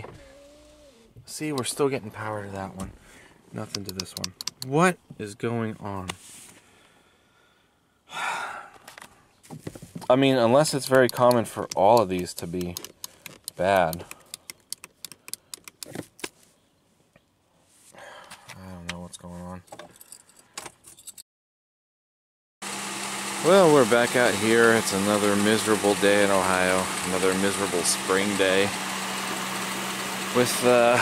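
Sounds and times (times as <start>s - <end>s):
man sighing: 6.8s - 8.9s, 18.0s - 18.5s
keys jangling: 19.8s - 21.2s
engine idling: 23.4s - 31.0s.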